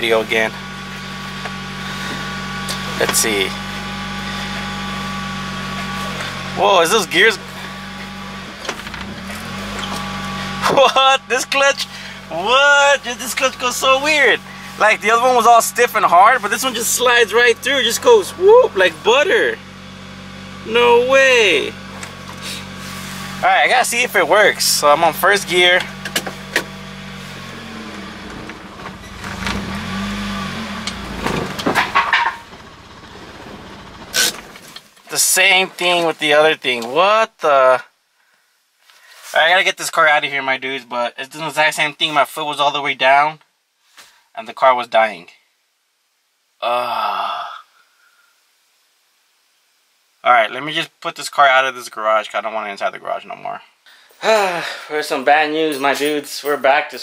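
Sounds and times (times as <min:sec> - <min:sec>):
car engine idling: 0:00.0 - 0:34.9
mechanical clunks: 0:27.8 - 0:34.8.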